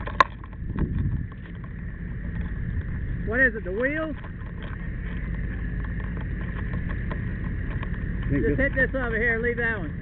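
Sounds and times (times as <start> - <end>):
fire engine running: 0.0 - 10.0.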